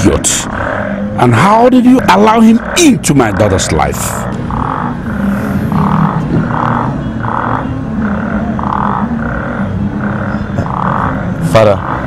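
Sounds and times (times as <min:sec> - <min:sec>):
low droning background music: 0:00.0 - 0:12.0.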